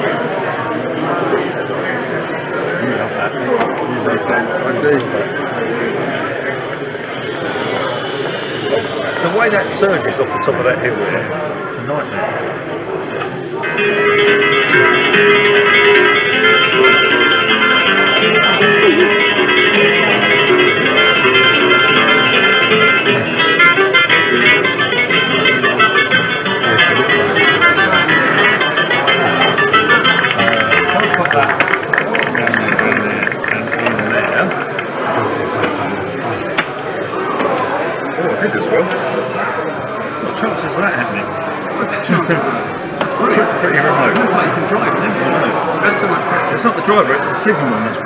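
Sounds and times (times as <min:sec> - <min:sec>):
chatter of voices: 0:00.0 - 0:48.0
spanish guitar music: 0:13.6 - 0:39.3.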